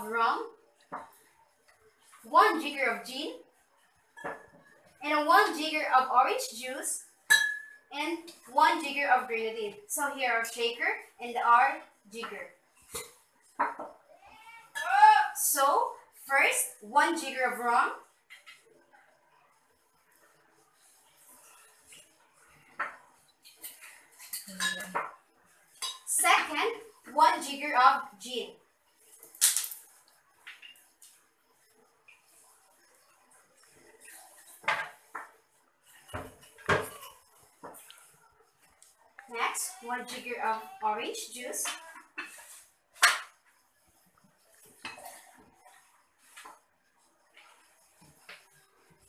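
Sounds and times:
metal cocktail shaker clinking: 0:07.3 - 0:07.8, 0:24.2 - 0:25.0.

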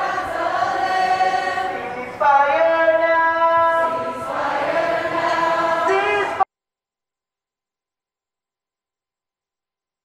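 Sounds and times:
group singing a chant: 0:00.0 - 0:06.4.

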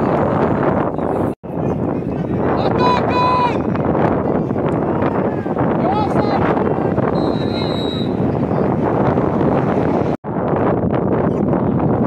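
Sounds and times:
wind buffeting microphone: 0:00.0 - 0:12.0
whistle blasts: 0:07.1 - 0:08.2.

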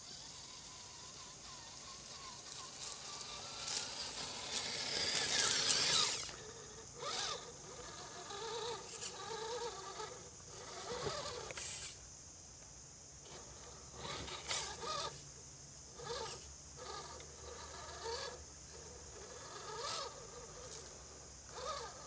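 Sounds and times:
toy car electric motor whining: 0:00.0 - 0:12.0, 0:13.2 - 0:22.0.

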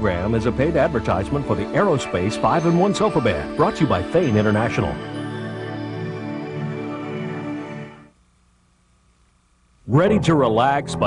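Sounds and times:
soft background music: 0:00.0 - 0:08.1, 0:09.9 - 0:11.0.

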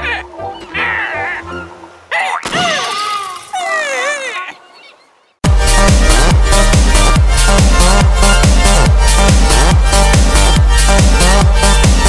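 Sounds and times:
squeaky cartoon vocal noises: 0:00.0 - 0:01.5, 0:02.1 - 0:05.1.

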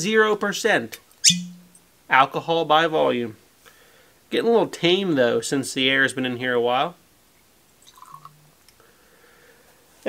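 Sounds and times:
liquid pouring into glass: 0:07.8 - 0:08.4.

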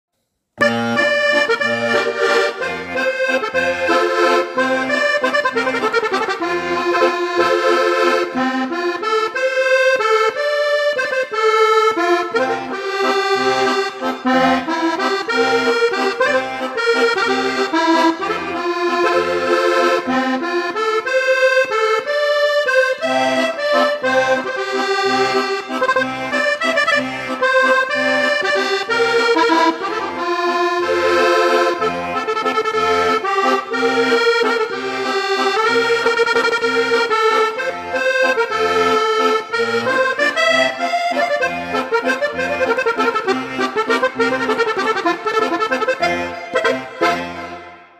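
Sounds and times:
button accordion playing a waltz: 0:00.6 - 0:47.9.

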